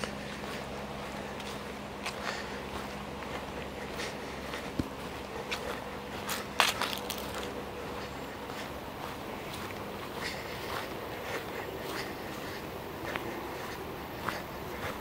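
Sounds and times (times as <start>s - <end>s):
footsteps crunching on dry grass: 0.0s - 15.0s
steady low hum: 0.0s - 15.0s.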